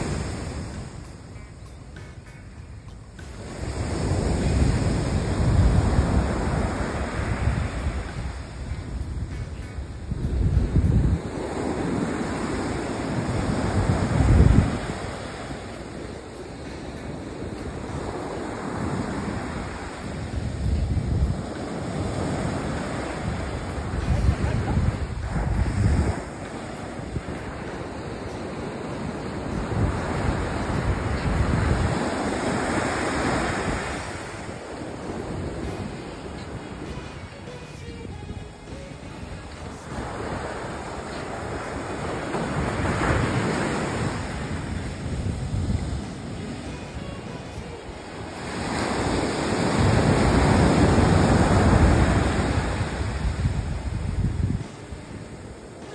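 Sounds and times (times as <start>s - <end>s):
surf breaking on a beach: 0.0s - 55.9s
wind buffeting the microphone: 3.1s - 36.9s, 38.1s - 55.6s.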